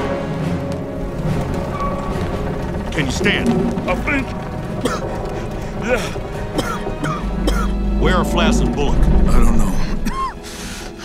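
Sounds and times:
background music: 0:00.0 - 0:11.0
man coughing: 0:05.8 - 0:07.8, 0:09.8 - 0:10.4.

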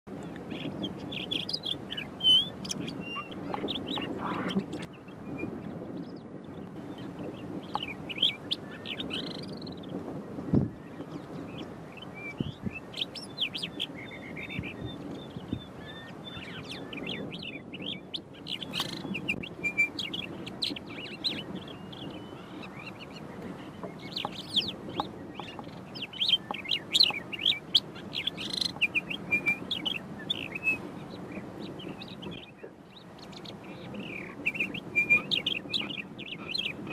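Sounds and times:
lark singing: 0:00.5 - 0:04.9, 0:07.0 - 0:09.8, 0:12.0 - 0:36.9.

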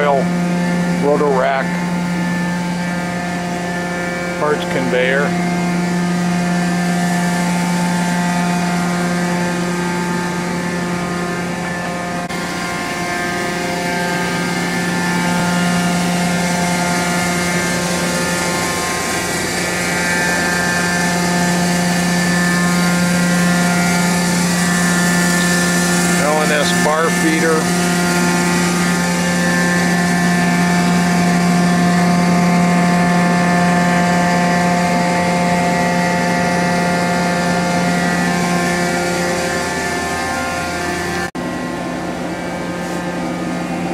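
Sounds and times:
lathe machine humming: 0:00.0 - 0:43.9.

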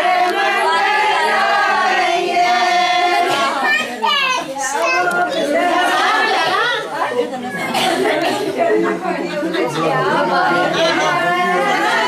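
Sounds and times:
women and children talking: 0:00.8 - 0:12.0.

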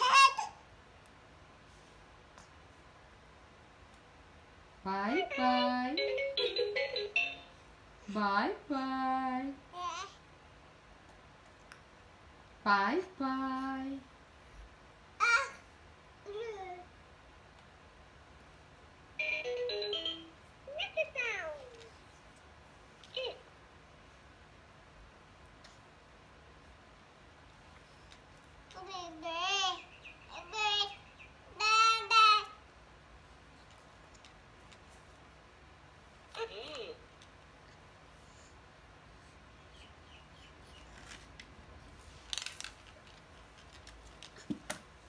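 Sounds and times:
toy beeping jingle: 0:05.6 - 0:07.6, 0:19.2 - 0:20.3
crackly clicks: 0:42.2 - 0:44.9.

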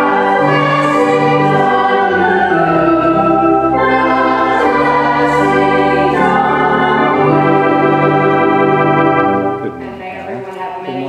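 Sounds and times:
organ holding a sustained chord: 0:00.0 - 0:09.9
woman speaking: 0:09.8 - 0:11.0.

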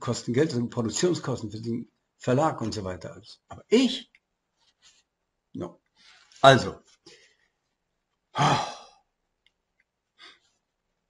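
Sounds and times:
man sighing: 0:08.4 - 0:08.9.

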